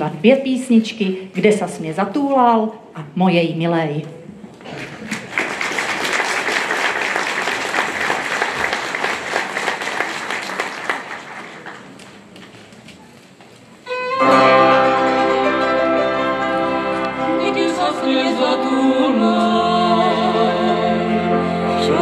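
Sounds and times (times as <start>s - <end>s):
audience applauding: 4.7s - 12.4s
cimbalom band playing: 13.9s - 22.0s
violins sustained notes: 13.9s - 22.0s.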